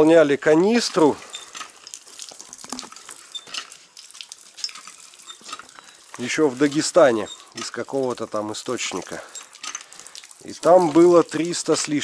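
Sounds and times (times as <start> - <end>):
water dripping and splashing: 0.0 - 12.0.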